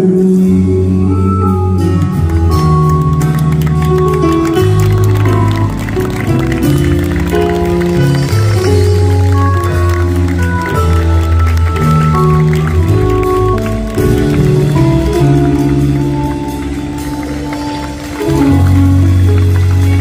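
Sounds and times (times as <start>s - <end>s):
live pop-rock band playing: 0.0s - 20.0s.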